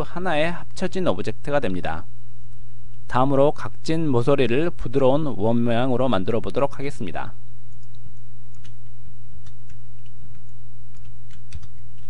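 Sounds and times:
steady low hum: 0.0s - 12.0s
keyboard and mouse clicks: 7.7s - 12.0s.

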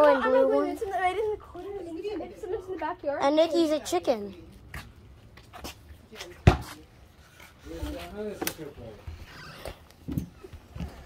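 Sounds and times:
footsteps on concrete: 4.3s - 8.2s.

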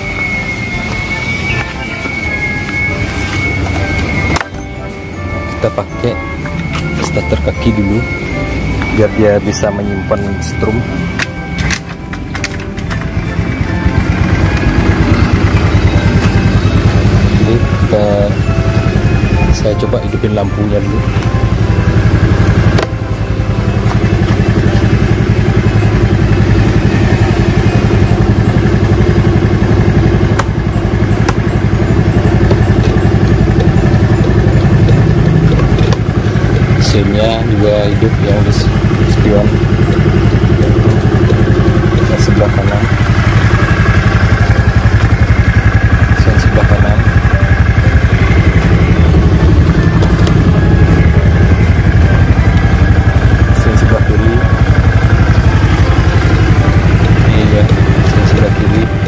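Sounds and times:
scooter engine idling: 0.0s - 59.0s.

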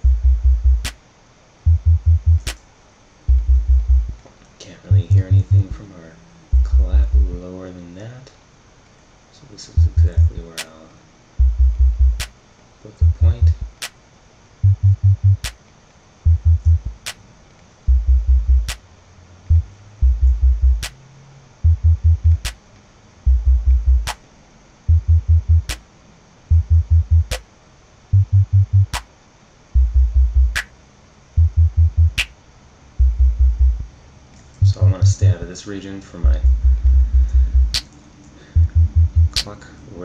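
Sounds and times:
deep bass drum thumps: 0.0s - 0.9s, 1.7s - 2.5s, 3.3s - 4.2s, 4.9s - 5.8s, 6.6s - 7.4s, 9.8s - 10.4s, 11.4s - 12.3s, 13.0s - 13.8s, 14.6s - 15.5s, 16.3s - 17.0s, 17.9s - 18.8s, 19.5s - 20.9s, 21.7s - 22.5s, 23.3s - 24.1s, 24.9s - 25.8s, 26.5s - 27.4s, 28.2s - 29.0s, 29.8s - 30.6s, 31.4s - 32.2s, 33.0s - 33.9s, 34.6s - 35.4s, 36.2s - 37.8s, 38.6s - 39.4s
sharp drum-machine click: 0.0s - 1.0s, 1.7s - 2.6s, 9.8s - 10.8s, 11.4s - 12.3s, 14.7s - 15.6s, 21.7s - 22.6s, 23.3s - 24.2s, 24.9s - 25.8s, 26.5s - 27.4s, 28.2s - 29.1s, 29.8s - 30.7s, 31.4s - 32.3s, 38.6s - 39.5s.

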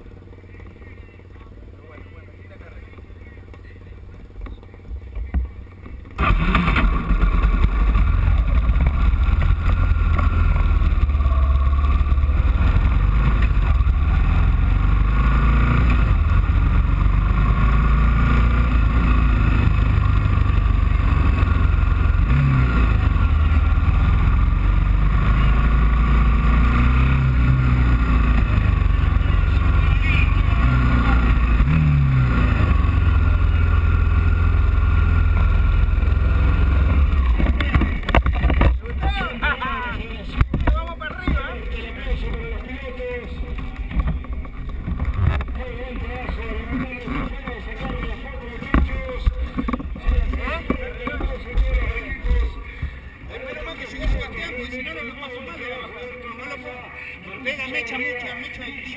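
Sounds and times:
motorcycle engine rumble: 0.0s - 58.9s.

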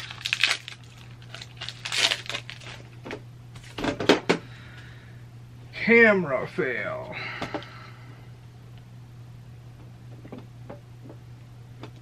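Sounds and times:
foil packs crinkling: 0.0s - 3.0s
steady low hum: 0.0s - 12.0s.

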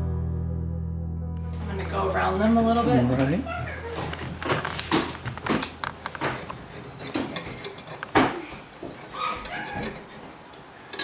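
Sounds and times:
knife scraping metal muffin tin: 6.0s - 11.0s.

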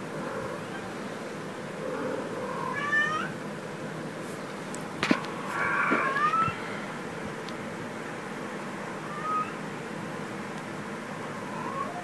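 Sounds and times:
kitten meowing: 5.7s - 6.6s, 9.1s - 9.6s.

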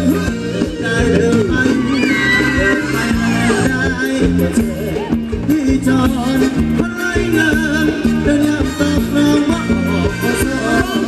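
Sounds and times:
live band dance music: 0.0s - 11.0s
steady drum beat: 0.0s - 11.0s.

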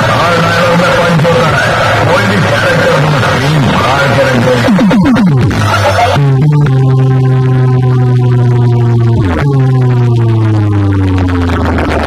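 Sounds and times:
electronic bass drone: 0.0s - 12.0s.

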